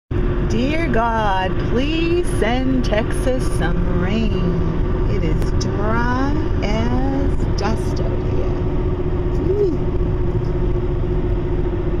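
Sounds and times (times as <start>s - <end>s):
car road and engine noise: 0.1s - 12.0s.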